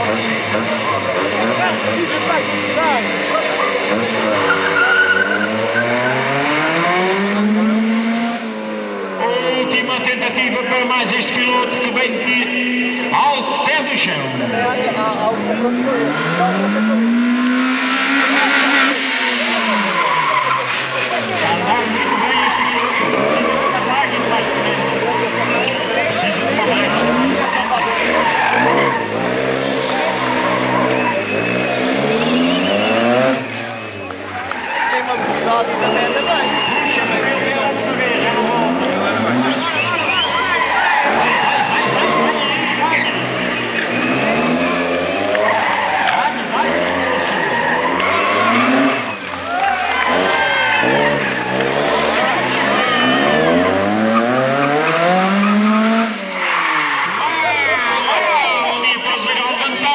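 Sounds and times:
rally car engine revving: 0.0s - 58.3s
tyres squealing on asphalt: 0.0s - 59.9s.

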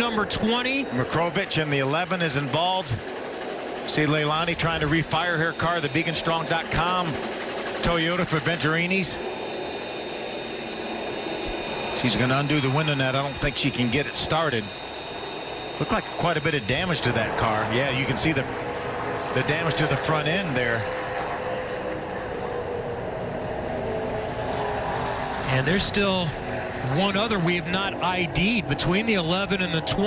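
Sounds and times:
car engines droning: 0.0s - 30.0s
faint high whines: 0.0s - 30.0s
steady rushing hum: 0.0s - 30.0s.

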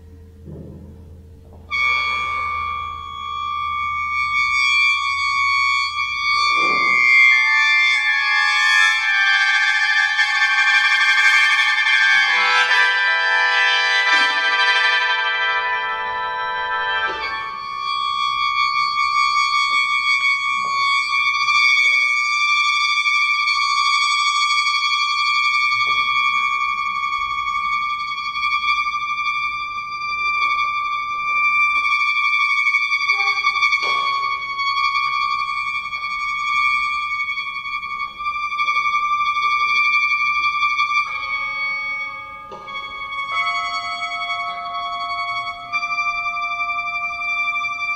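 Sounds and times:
mouth organ playing: 8.0s - 22.0s, 41.1s - 47.9s.

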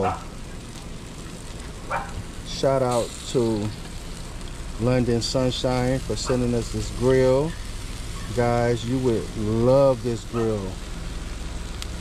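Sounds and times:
chicken sizzling on charcoal grill: 0.0s - 12.0s.

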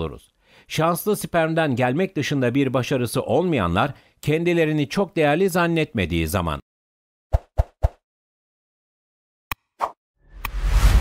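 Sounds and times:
whoosh: 10.3s - 11.0s.

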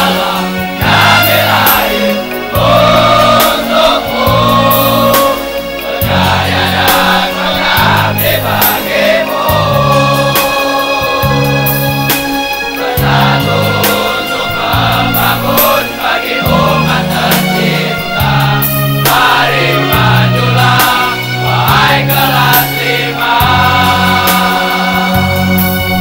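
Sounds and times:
male choir singing: 0.0s - 26.0s.

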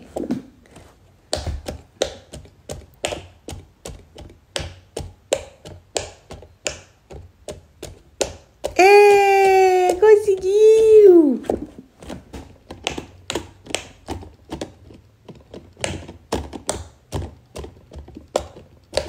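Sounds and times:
soft taps on silicone bubbles: 0.0s - 19.0s.

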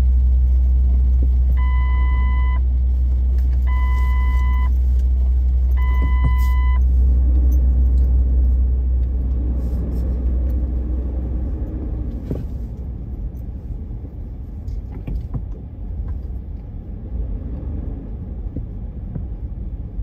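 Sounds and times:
deep traffic rumble: 0.0s - 20.0s.

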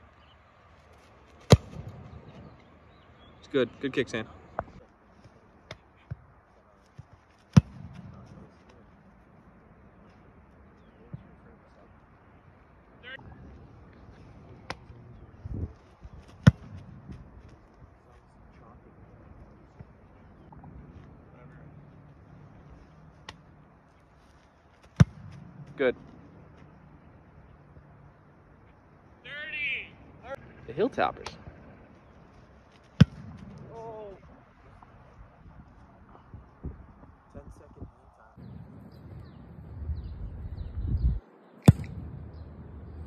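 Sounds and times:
faint approach footsteps: 0.0s - 43.0s
foot kicking a football: 1.3s - 2.4s, 7.0s - 8.2s, 16.2s - 17.6s, 24.8s - 25.7s, 32.7s - 33.8s, 41.6s - 42.4s.

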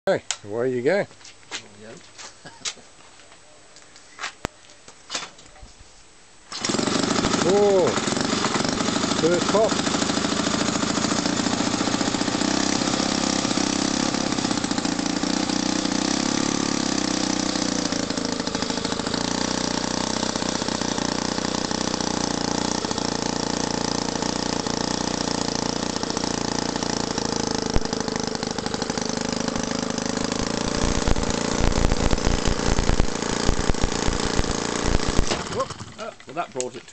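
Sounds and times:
miniature engine running: 6.5s - 36.4s.

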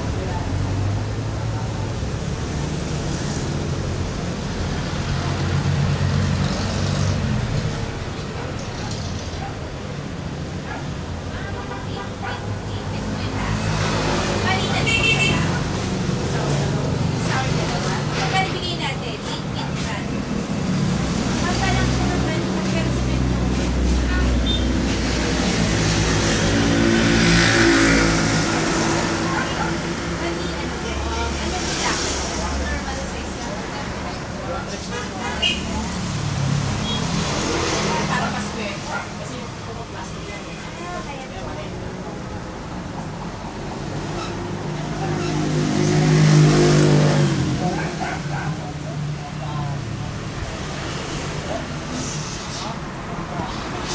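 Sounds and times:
voices in background: 0.0s - 53.9s
vehicle engine passing by: 12.9s - 53.9s.

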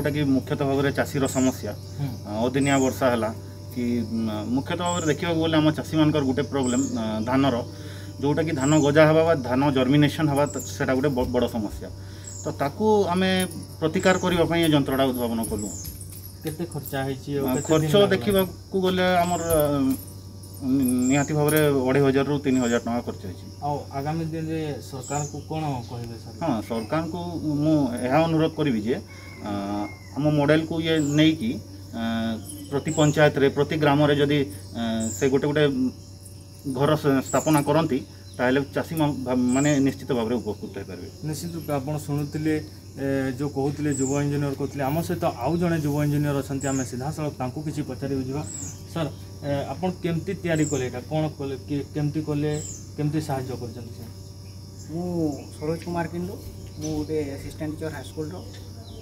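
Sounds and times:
man speaking: 0.0s - 20.0s, 36.7s - 54.1s, 54.9s - 58.5s
crickets trilling: 0.0s - 59.0s
steady background hum: 0.0s - 59.0s.

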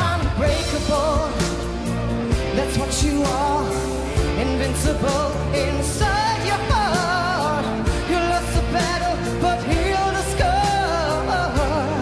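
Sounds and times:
pop ballad backing: 0.0s - 12.0s.

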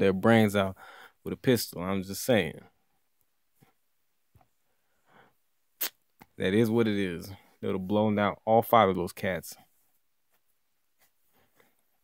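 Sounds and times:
soft breath: 0.8s - 1.2s, 4.6s - 5.4s
sharp mouth noise: 5.8s - 6.0s.

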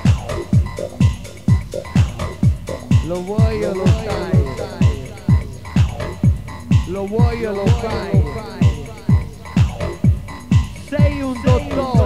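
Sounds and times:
deep kick drum: 0.0s - 12.0s.

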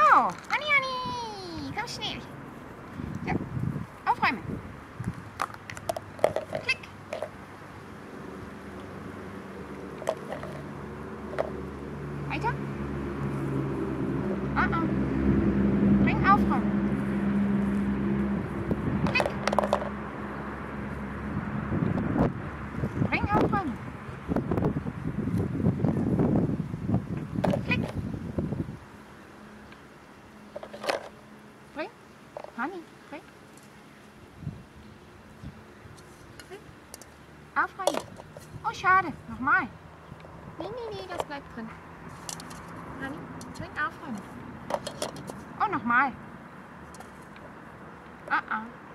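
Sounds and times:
plastic toy clacking in bucket: 5.4s - 7.4s, 10.0s - 10.7s, 19.1s - 19.9s, 30.6s - 31.1s, 37.8s - 38.4s, 44.7s - 45.4s.

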